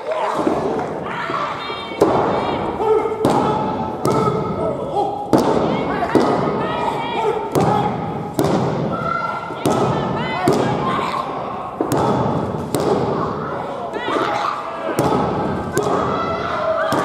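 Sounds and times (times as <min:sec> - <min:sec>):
voices shouting: 0:00.0 - 0:17.0.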